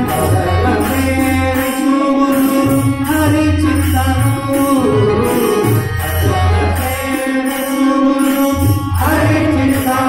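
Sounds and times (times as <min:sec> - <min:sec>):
harmonium: 0:00.0 - 0:10.0
tabla: 0:00.0 - 0:10.0.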